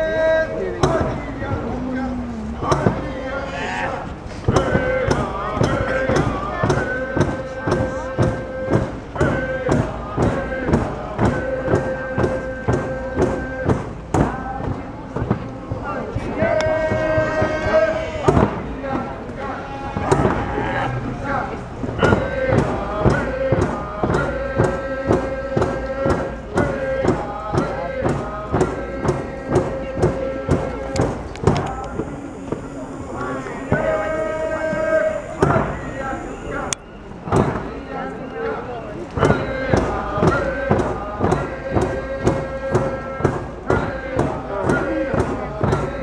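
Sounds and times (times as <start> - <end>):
drums beating steadily: 0.0 - 38.1, 39.1 - 46.0
group of voices singing: 0.0 - 46.0.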